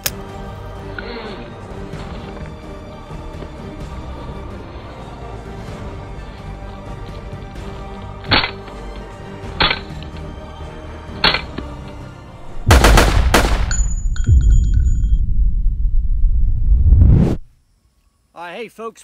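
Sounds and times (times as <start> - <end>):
background music: 0.0 - 15.3
suppressed pistol shots: 12.7 - 13.9.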